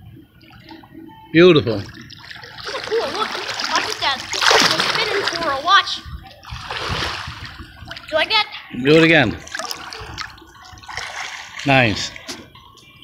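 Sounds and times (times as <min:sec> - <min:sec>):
water splashing in a pool: 0:01.6 - 0:08.2, 0:09.0 - 0:12.4
children's voices: 0:02.6 - 0:06.7.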